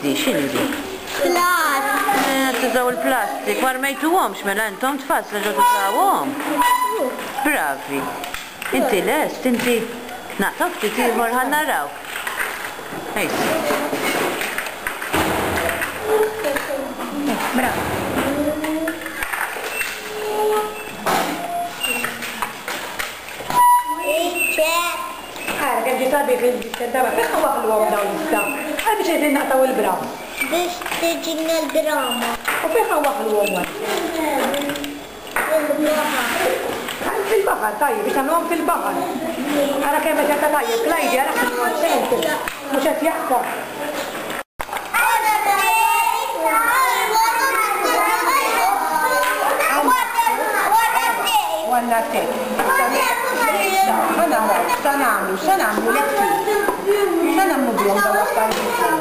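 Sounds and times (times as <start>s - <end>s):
young children talking: 1.0s - 4.4s, 33.8s - 37.2s, 44.9s - 59.0s
steady electronic beep: 23.5s - 25.6s.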